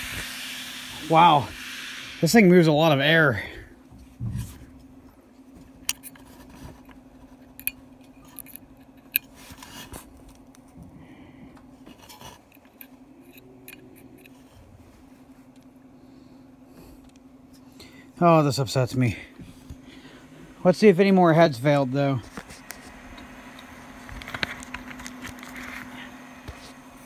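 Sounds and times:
hard drive humming: 0.0s - 27.0s.

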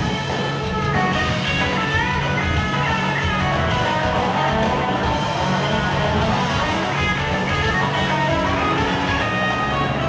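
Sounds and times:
drums and cymbals: 0.0s - 10.0s
electric guitars: 0.0s - 10.0s.

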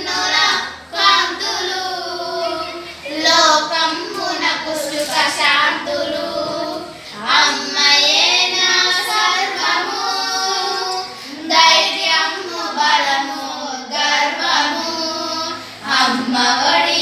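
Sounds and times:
girls singing in unison: 0.0s - 17.0s.

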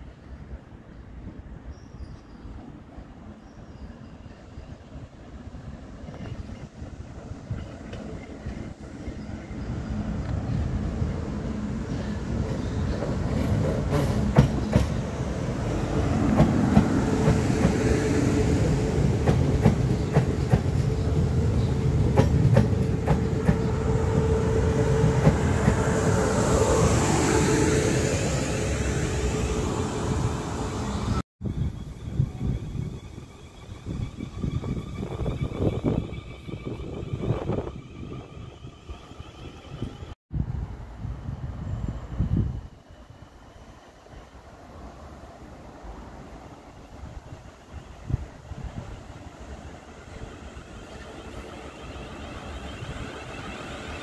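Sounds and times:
distant train noise: 0.0s - 54.0s.

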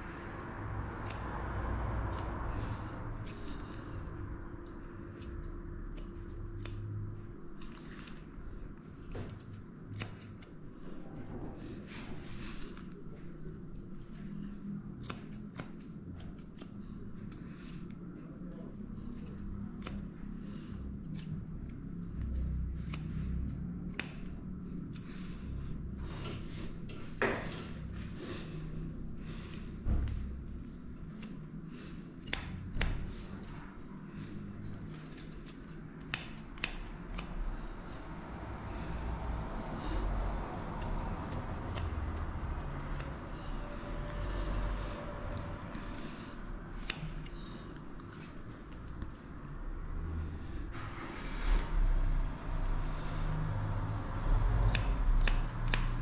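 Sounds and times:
scissors snipping hair: 0.0s - 8.4s, 9.0s - 11.4s, 12.6s - 25.3s, 30.2s - 38.1s, 39.8s - 44.4s, 45.2s - 49.3s, 53.6s - 56.0s.

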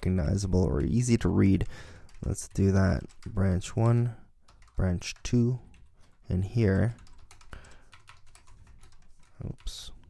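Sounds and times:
computer keyboard typing: 0.8s - 9.9s.

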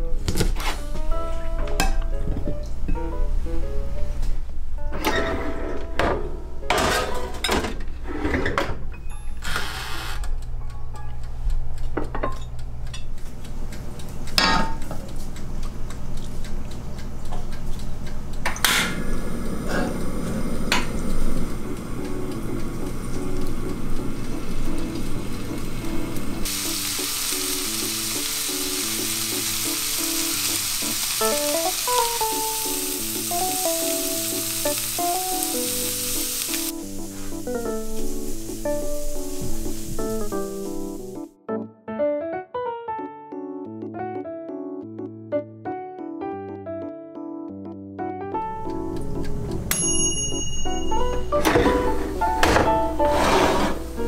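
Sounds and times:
background music: 0.0s - 7.6s, 21.0s - 54.0s
shrimp sizzling in hot oil: 20.5s - 41.3s.

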